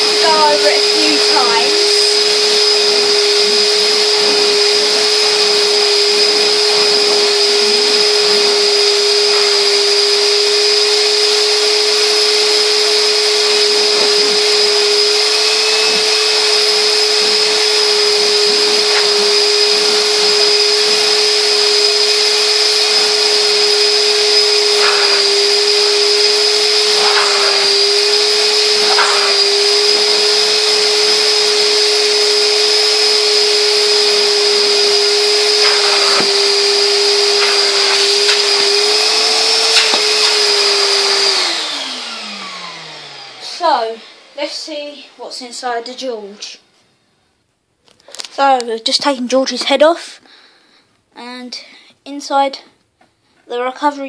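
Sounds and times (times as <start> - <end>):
vacuum motor whine: 0.0 - 44.9.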